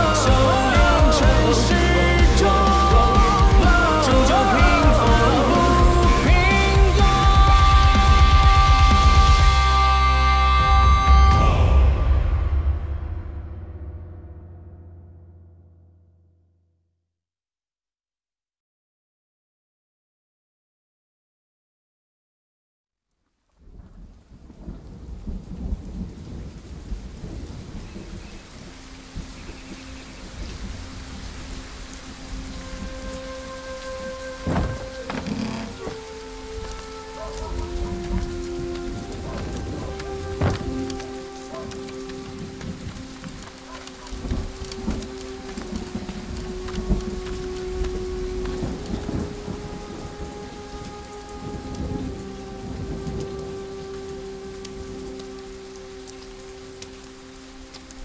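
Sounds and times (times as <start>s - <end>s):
steady rain: 0.0s - 13.6s, 23.1s - 58.0s
low rumbling thunder: 10.7s - 15.6s, 23.6s - 55.6s
sharp thunder cracks: 34.4s - 35.1s, 37.2s - 43.4s.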